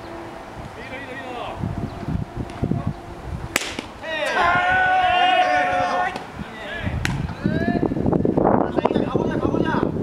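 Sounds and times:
baseball striking home plate: 0:03.5 - 0:04.4, 0:07.0 - 0:07.3
players shouting a long call: 0:03.9 - 0:07.8.

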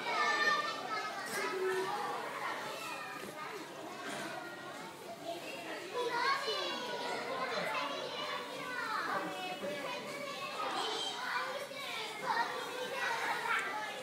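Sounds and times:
young children talking and calling: 0:00.0 - 0:14.0.

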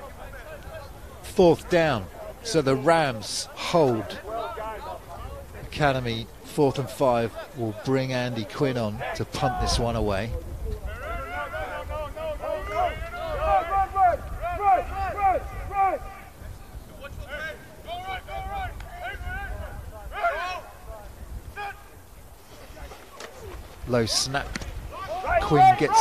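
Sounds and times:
football players shouting: 0:00.0 - 0:26.0
wind rumble on microphone: 0:04.1 - 0:06.5, 0:09.0 - 0:26.0.

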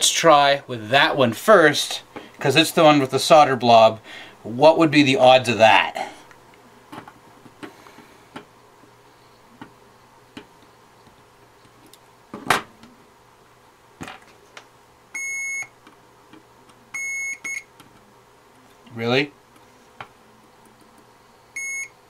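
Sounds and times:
multimeter high beeps: 0:15.2 - 0:15.7, 0:17.0 - 0:17.7, 0:21.5 - 0:22.0.

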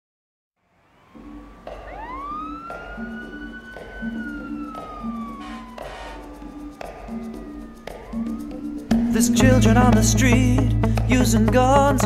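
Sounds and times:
siren sound wailing: 0:00.6 - 0:09.4
music beat: 0:01.2 - 0:12.0.

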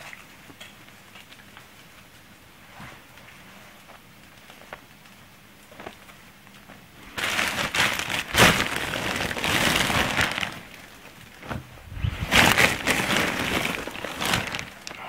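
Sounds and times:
plastic bag rustling: 0:07.0 - 0:15.0.

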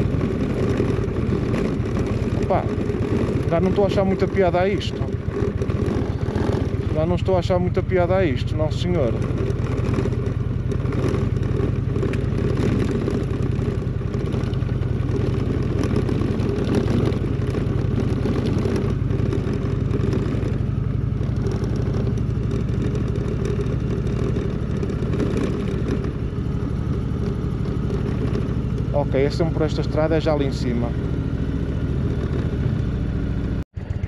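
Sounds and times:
clatter on rough road: 0:00.0 - 0:34.0
motorcycle engine running at low speed: 0:00.0 - 0:34.0.

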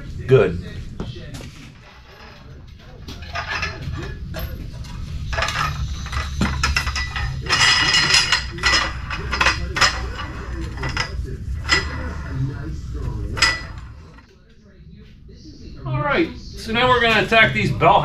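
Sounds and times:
metallic clinks and rattles: 0:03.1 - 0:12.1.

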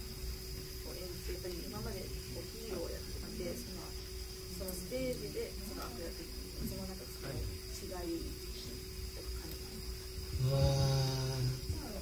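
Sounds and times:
faint steady hum: 0:00.0 - 0:12.0
man humming hmm: 0:10.4 - 0:11.6.

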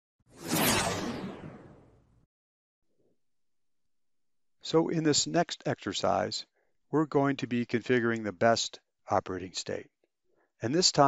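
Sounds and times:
whoosh sound effect: 0:00.3 - 0:02.0.

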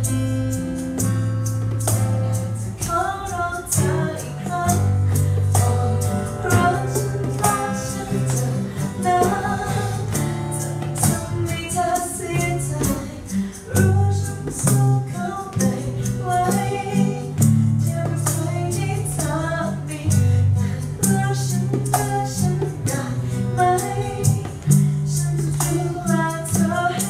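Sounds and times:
acoustic guitar: 0:00.0 - 0:27.0
hand drum percussion: 0:00.0 - 0:27.0
woman singing into microphone: 0:02.4 - 0:27.0.

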